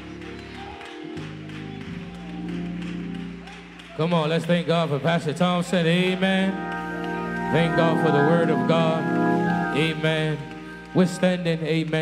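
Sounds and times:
organ playing held chords: 0.0s - 12.0s.

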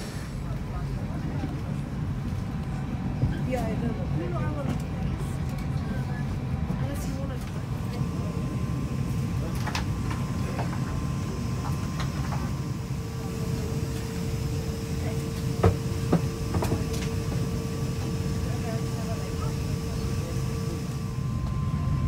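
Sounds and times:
steady hum-like tone: 7.7s - 22.0s.

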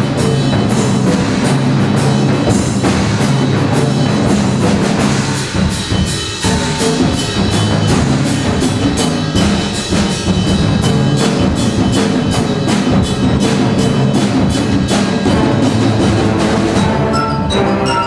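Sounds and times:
concert band playing: 0.0s - 18.0s
sharp percussion strikes: 0.0s - 18.0s
ringing mallet percussion: 5.8s - 15.2s, 16.8s - 18.0s.

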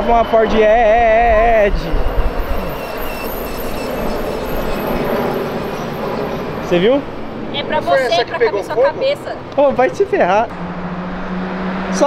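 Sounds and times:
car driving past: 10.4s - 12.0s.

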